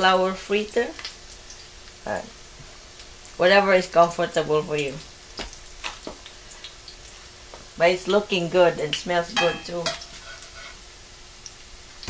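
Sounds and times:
fritters sizzling in oil: 0:00.0 - 0:12.0.

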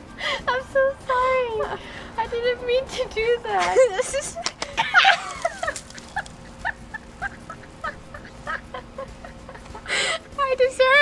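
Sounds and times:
women giggling: 0:03.6 - 0:10.2.

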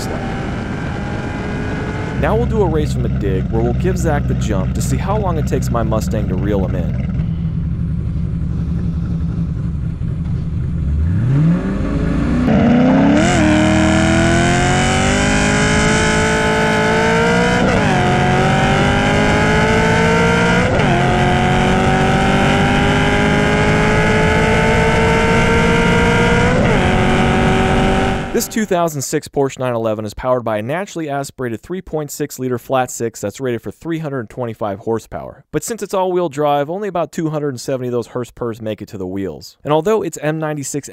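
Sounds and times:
car accelerating hard: 0:00.0 - 0:28.5
car engine idling: 0:02.2 - 0:12.5.

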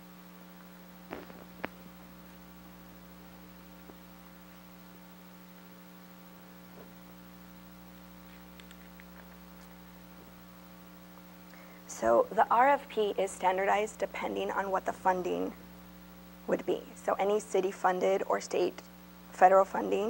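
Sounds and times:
electrical mains hum: 0:00.0 - 0:20.0
paper pages rustling: 0:08.2 - 0:10.0.

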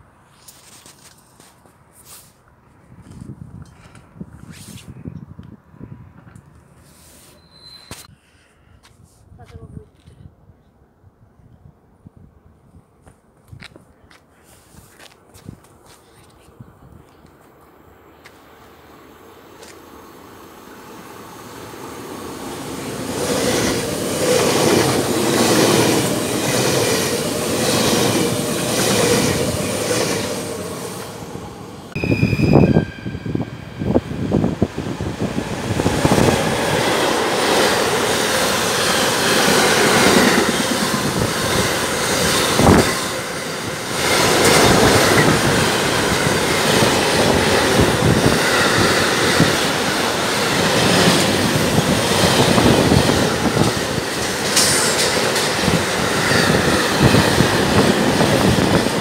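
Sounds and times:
high wheel squeal: 0:07.2 - 0:08.1, 0:31.9 - 0:34.1
train wheels clattering: 0:36.9 - 0:59.0.

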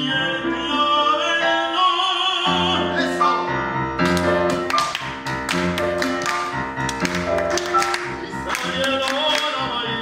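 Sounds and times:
grand piano playing: 0:00.0 - 0:10.0.

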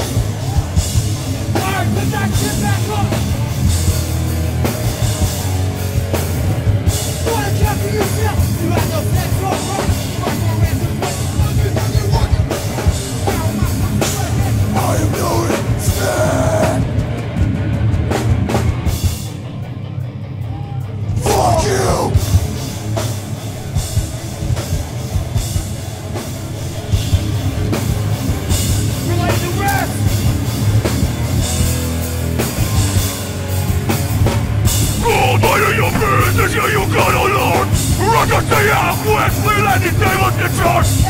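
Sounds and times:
live hardcore band playing: 0:00.0 - 0:41.0
person shouting: 0:21.2 - 0:22.2, 0:35.0 - 0:41.0.

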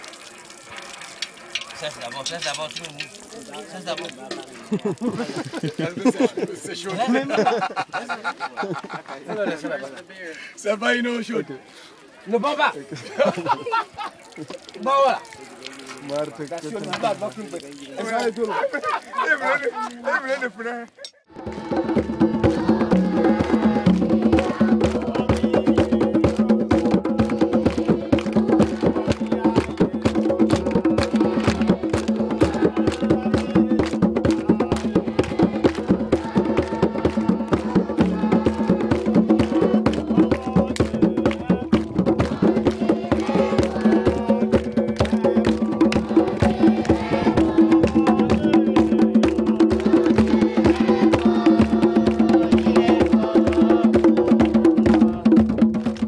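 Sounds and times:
voices singing: 0:21.2 - 0:55.8
hand drums fast rhythm: 0:21.3 - 0:56.0.

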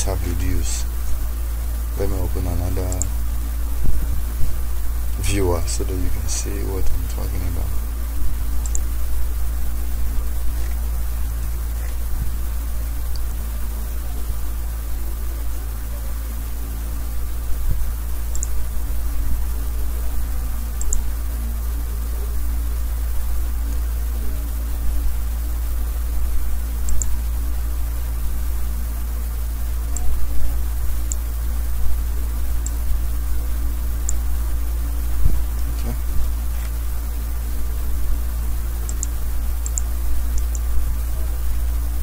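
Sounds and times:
low electrical hum: 0:00.0 - 0:42.0
recording hiss: 0:00.0 - 0:42.0
faint high ticks: 0:08.6 - 0:08.9, 0:18.3 - 0:18.6, 0:20.8 - 0:21.1, 0:26.8 - 0:27.2, 0:32.6 - 0:32.8, 0:34.0 - 0:34.2, 0:38.8 - 0:40.7.

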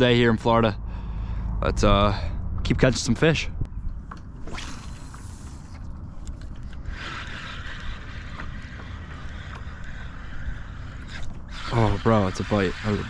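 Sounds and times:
wind rumble on microphone: 0:00.0 - 0:13.0
fishing reel whirring: 0:04.4 - 0:13.0.

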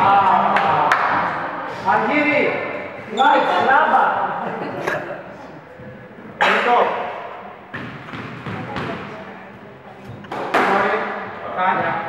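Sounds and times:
squash ball knocking: 0:07.7 - 0:09.2.

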